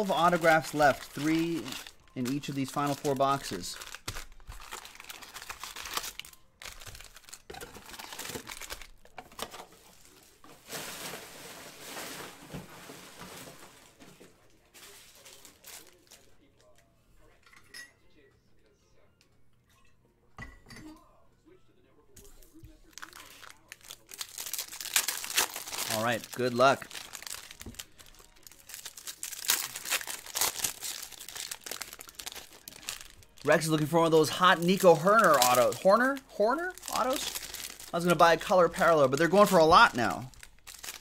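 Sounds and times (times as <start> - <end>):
foil packs crinkling: 0.0 - 14.1, 14.7 - 16.4, 22.8 - 41.0.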